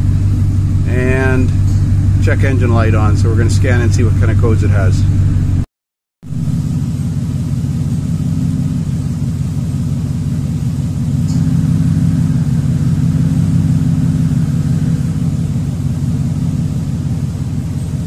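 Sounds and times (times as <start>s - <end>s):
truck engine idling: 0.0s - 5.6s, 6.2s - 18.0s.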